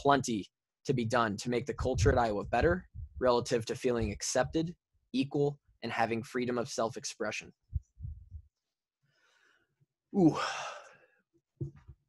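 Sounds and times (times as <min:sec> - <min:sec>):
man sighing: 0:10.2 - 0:11.0.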